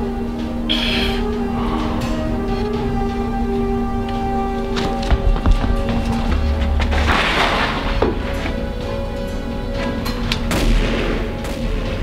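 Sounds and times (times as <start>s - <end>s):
background music: 0.0s - 12.0s
gunshots: 6.9s - 8.1s, 10.5s - 12.0s.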